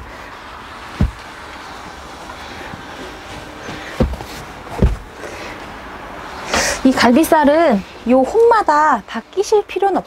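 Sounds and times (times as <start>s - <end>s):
low background noise: 0.0s - 10.0s
dull knock of bed panels: 0.9s - 1.3s, 3.6s - 5.1s.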